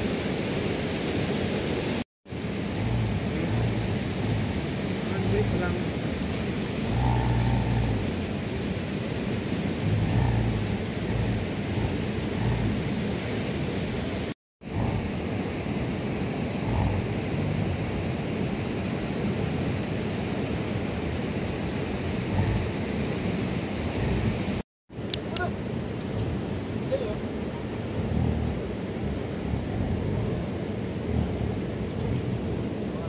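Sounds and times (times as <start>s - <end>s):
mountain stream rushing: 0.0s - 33.0s
low rumbles: 2.3s - 18.0s, 22.0s - 33.0s.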